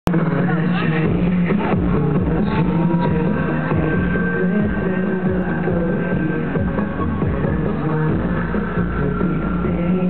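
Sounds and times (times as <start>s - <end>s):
man singing into a microphone: 0.1s - 10.0s.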